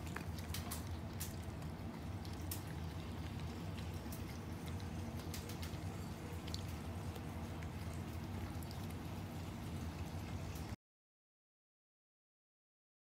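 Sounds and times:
dog chewing wetly: 0.0s - 10.8s
steady low hum: 0.0s - 10.8s.

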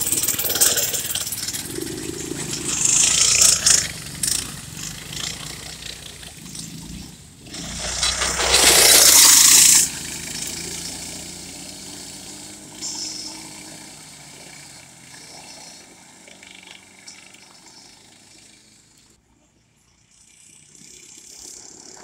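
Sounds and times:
small engines running: 0.0s - 22.0s
loud rushing burst: 7.4s - 13.6s.

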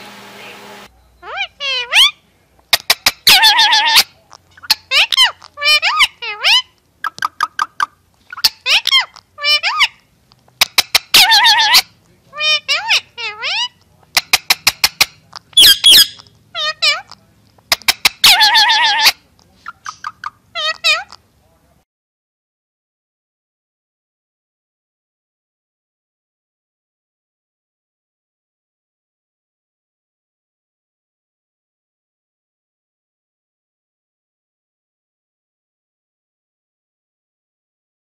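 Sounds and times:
parakeet calls: 0.3s - 21.3s
parakeet wavering call: 3.2s - 4.0s, 11.1s - 13.7s, 15.6s - 17.2s, 18.2s - 19.2s.

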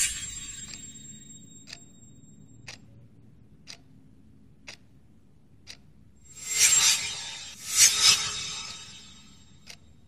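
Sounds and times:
wall clock ticking: 0.0s - 6.1s.

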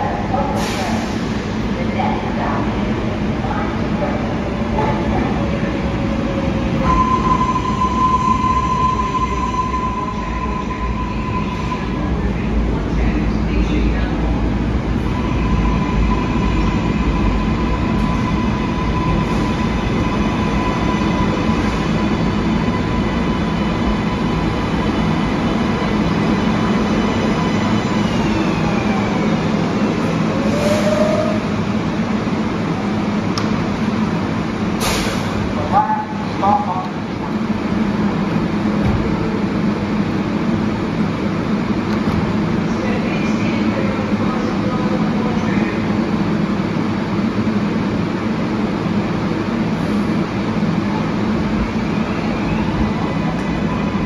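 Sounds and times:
train braking rumble: 4.6s - 33.2s.

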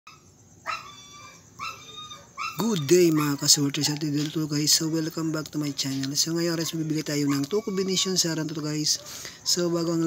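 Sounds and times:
dog whining: 0.1s - 4.2s, 5.8s - 8.3s.

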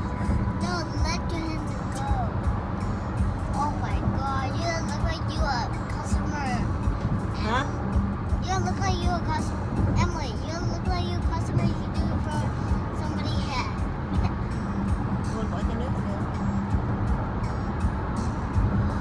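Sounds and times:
car cabin road and engine rumble: 0.0s - 19.0s
girl's voice: 0.2s - 2.5s, 3.4s - 7.8s, 8.4s - 14.5s.

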